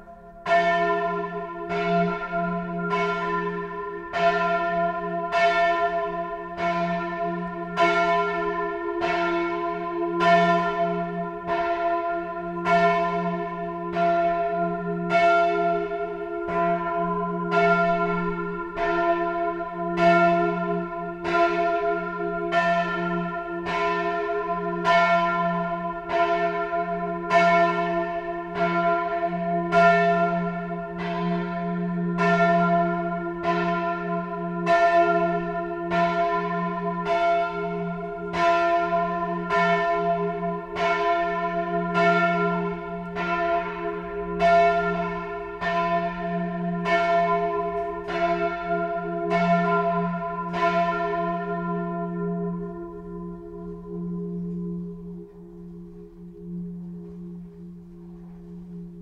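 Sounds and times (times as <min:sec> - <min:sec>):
church bell ringing: 0:00.0 - 0:59.0.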